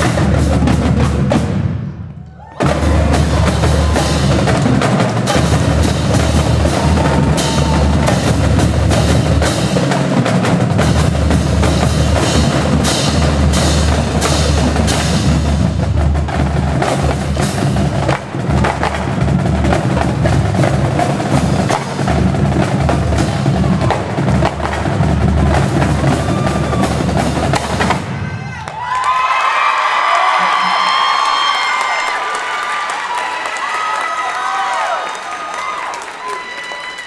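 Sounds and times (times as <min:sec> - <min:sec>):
marching bass drums playing: 0:00.0 - 0:02.0, 0:02.6 - 0:28.3
crowd cheering and yelling: 0:02.0 - 0:08.7, 0:23.3 - 0:24.4, 0:25.4 - 0:37.0.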